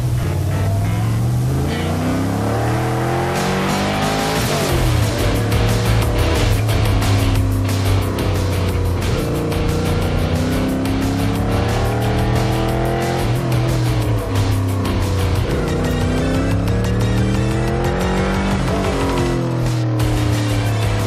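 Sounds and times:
music with quick steady beat: 0.0s - 21.0s
race car engine revving: 0.0s - 21.0s.

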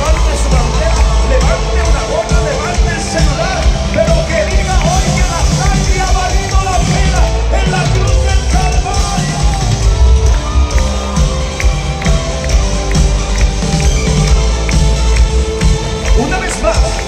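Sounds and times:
live band playing worship song: 0.0s - 17.0s
steady drumbeat: 0.0s - 17.0s.

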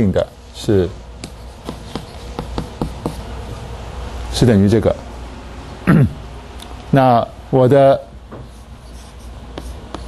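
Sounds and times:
chalk tapping against board: 1.2s - 3.3s, 8.3s - 10.0s
chalk scratching on blackboard: 1.2s - 3.4s, 8.4s - 10.0s.

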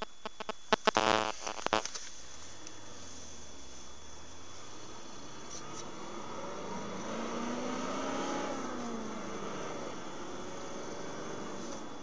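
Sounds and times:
faint high whine: 0.0s - 12.0s
road noise: 0.8s - 12.0s
car engine revving: 2.8s - 12.0s.

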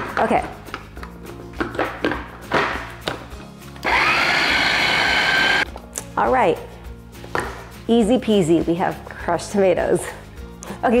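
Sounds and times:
background music: 0.0s - 11.0s
electric food chopper whining: 3.8s - 5.6s.

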